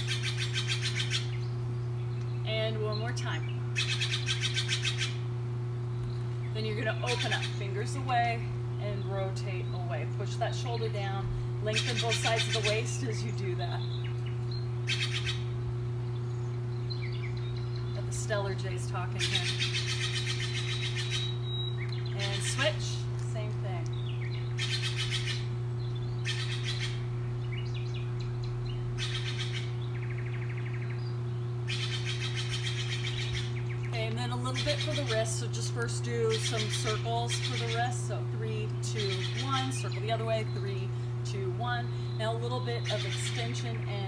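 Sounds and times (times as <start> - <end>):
songbirds trilling and chirping: 0.0 - 44.0
steady low hum: 0.0 - 44.0.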